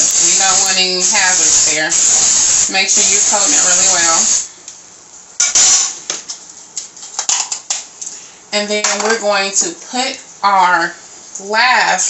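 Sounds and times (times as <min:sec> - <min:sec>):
aerosol can spraying: 0:00.0 - 0:04.5.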